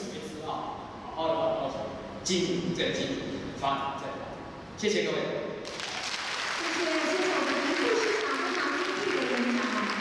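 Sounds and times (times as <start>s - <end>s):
audience applauding: 5.7s - 10.0s.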